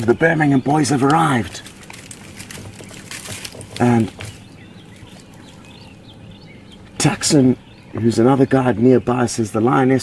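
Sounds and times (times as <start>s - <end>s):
low steady hum: 0.0s - 9.7s.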